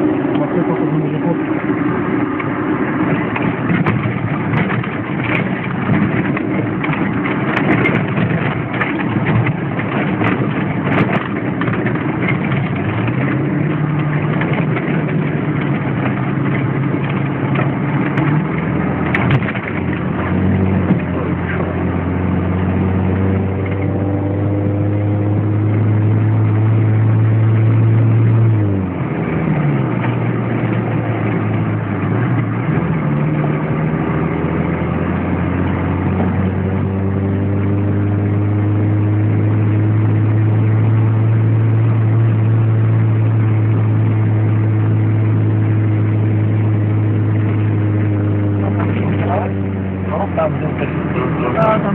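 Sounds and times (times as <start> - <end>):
car engine driving: 0.0 - 51.9.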